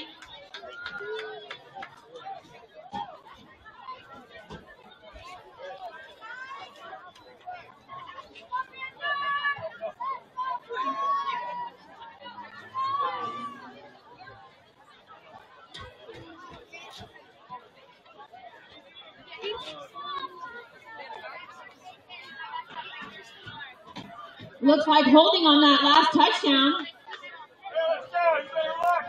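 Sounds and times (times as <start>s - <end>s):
chatter of many voices: 0.0s - 29.0s.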